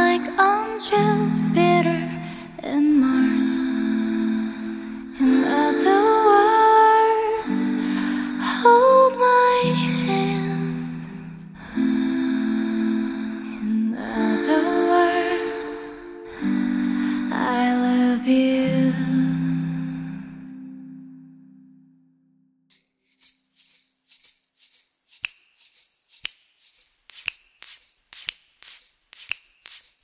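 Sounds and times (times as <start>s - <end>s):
wooden hand shaker: 22.7s - 30.0s.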